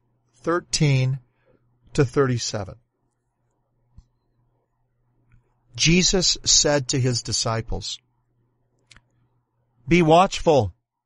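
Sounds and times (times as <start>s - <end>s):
faint low hum: 0.0s - 11.0s
man speaking: 0.4s - 1.2s, 1.9s - 2.8s, 5.8s - 8.0s, 9.8s - 10.8s.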